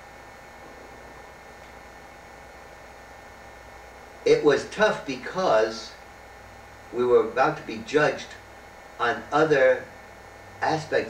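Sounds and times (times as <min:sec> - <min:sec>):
faint hum: 0:00.0 - 0:11.0
steady low hiss: 0:00.0 - 0:11.0.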